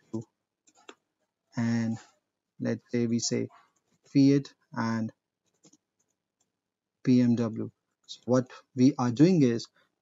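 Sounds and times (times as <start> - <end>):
person speaking: 1.5 - 5.2, 7.0 - 9.7.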